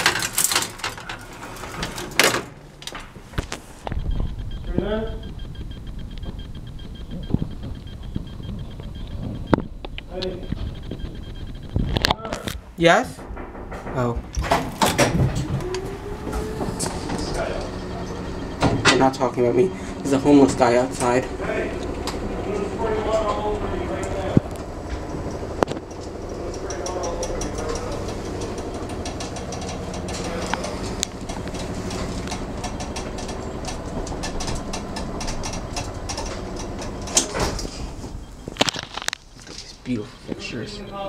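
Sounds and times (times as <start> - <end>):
elevator rumbling and rattling: 0.0 - 39.7
rapid regular clicking: 2.8 - 12.5, 20.0 - 39.6.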